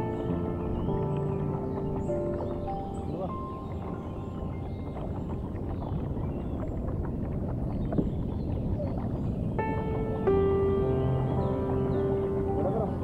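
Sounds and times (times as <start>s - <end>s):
background music: 0.0s - 5.8s, 9.6s - 13.0s
water splashing around a kayak: 0.0s - 13.0s
wind rumble on microphone: 0.0s - 13.0s.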